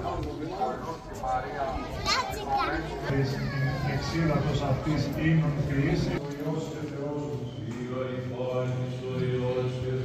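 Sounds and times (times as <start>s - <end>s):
children calling out: 2.0s - 4.3s
man chanting: 3.1s - 10.0s.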